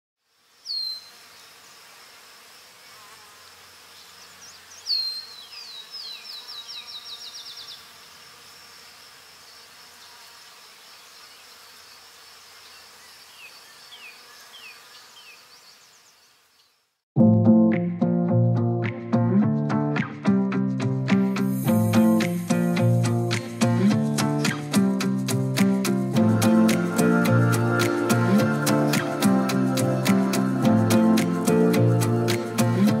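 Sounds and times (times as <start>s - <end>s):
insects in grass: 0.2s - 17.0s
bird whistles and trill: 0.7s - 1.1s, 4.8s - 7.5s.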